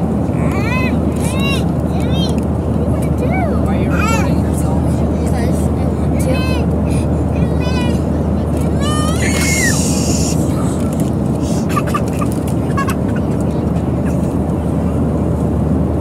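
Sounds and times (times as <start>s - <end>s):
airliner engine rumble: 0.0s - 16.0s
high-pitched voices: 8.6s - 14.2s.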